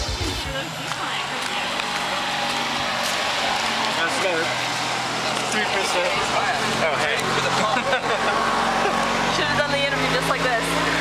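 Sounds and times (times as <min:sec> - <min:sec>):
people chatting and calling out: 0:00.0 - 0:11.0.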